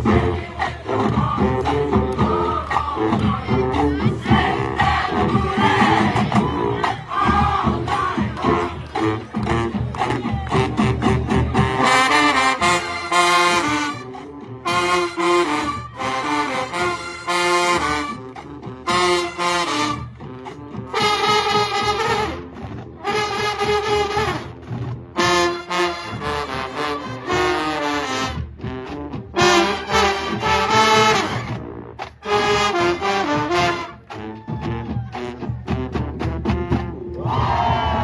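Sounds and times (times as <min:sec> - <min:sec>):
marching band drumming: 0:00.0 - 0:38.0
brass chords in short blasts: 0:11.6 - 0:18.2, 0:25.2 - 0:28.4, 0:29.4 - 0:31.4.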